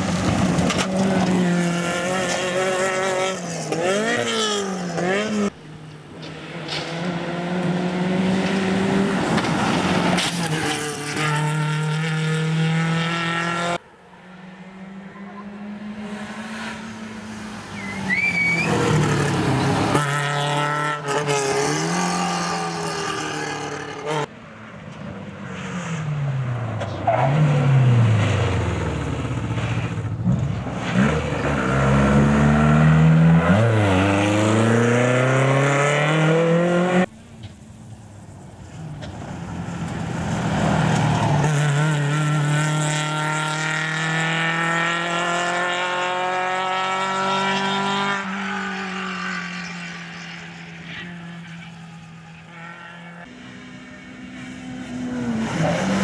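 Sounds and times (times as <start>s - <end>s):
rally car engine revving: 0.0s - 5.6s, 6.2s - 13.8s, 14.6s - 24.3s, 26.8s - 37.1s, 39.8s - 56.0s
car accelerating: 6.2s - 24.3s, 25.6s - 37.2s, 39.0s - 56.0s.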